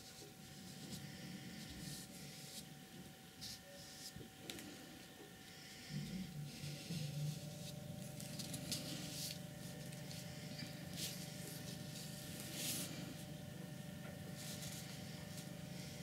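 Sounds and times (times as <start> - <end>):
brush stroking paint on paper: 0.0 - 2.7, 3.4 - 4.2, 6.5 - 13.4, 14.1 - 16.0
low steady hum: 0.0 - 16.0.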